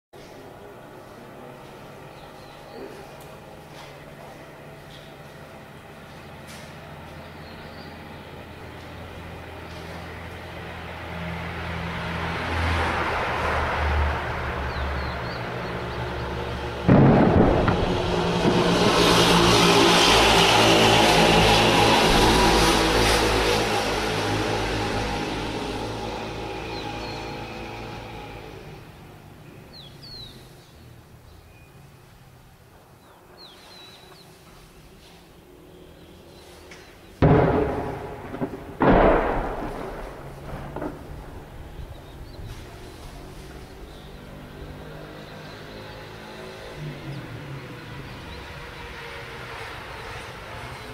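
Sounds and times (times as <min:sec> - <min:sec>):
long rolling rumble: 0:00.6 - 0:29.5, 0:37.2 - 0:50.9
distant tank cannon fire: 0:16.5 - 0:25.2, 0:37.2 - 0:43.4
sharp booms: 0:16.7 - 0:25.0, 0:37.2 - 0:42.9.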